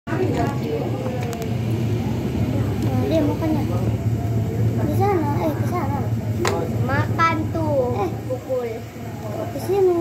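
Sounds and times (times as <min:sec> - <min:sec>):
indistinct voices talking: 0:00.1 - 0:10.0
steady low hum: 0:00.1 - 0:10.0.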